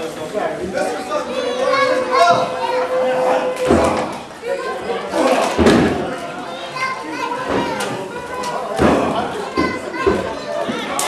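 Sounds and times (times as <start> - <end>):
crowd chatter and shouts: 0.0 - 11.0.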